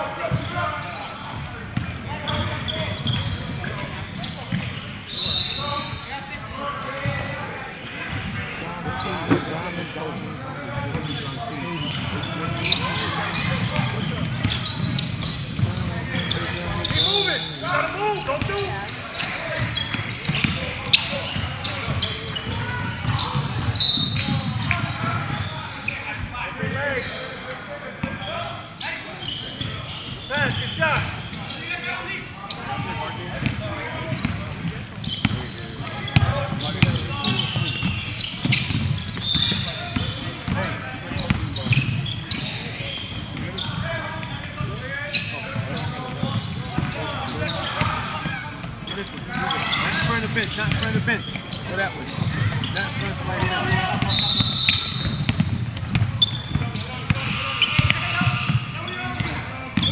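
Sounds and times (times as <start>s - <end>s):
indistinct voices in large hall: 0.0s - 59.9s
basketball dribbled on wooden floor: 55.0s - 57.1s.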